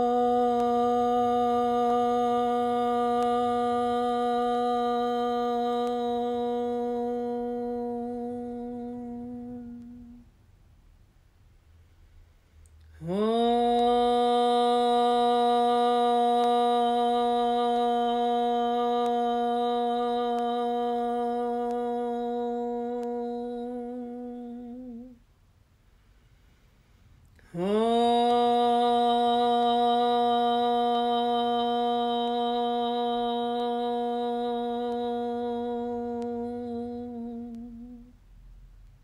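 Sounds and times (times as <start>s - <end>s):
woman chanting om: 0.0s - 10.3s, 12.9s - 25.2s, 27.4s - 38.2s.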